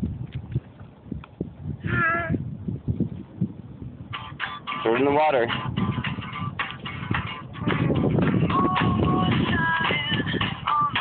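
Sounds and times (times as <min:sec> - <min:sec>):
child squealing: 0:01.9 - 0:02.4.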